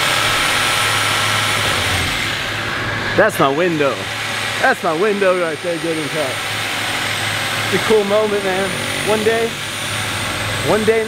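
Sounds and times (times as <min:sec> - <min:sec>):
power saw cutting wall: 0:00.0 - 0:11.0.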